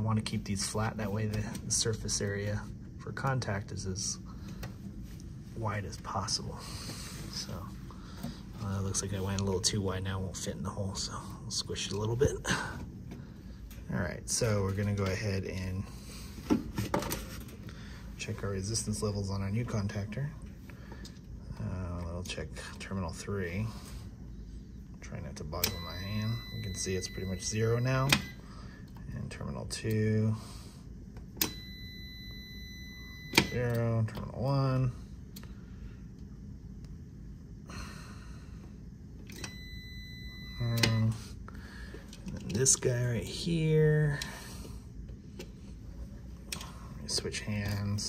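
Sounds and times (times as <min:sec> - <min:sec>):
low background hum: 0:00.0 - 0:48.0
continuity meter beeping tone: 0:25.5 - 0:28.5, 0:31.4 - 0:34.1, 0:39.4 - 0:41.3.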